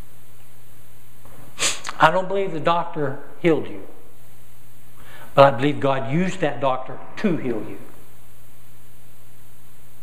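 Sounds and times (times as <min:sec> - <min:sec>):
man speaking: 0:01.8 - 0:04.0, 0:05.4 - 0:07.9
man's sharp breath: 0:05.0 - 0:05.4.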